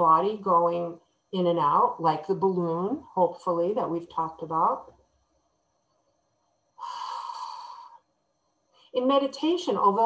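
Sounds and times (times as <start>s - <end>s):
woman breathing in slowly: 6.8s - 8.1s.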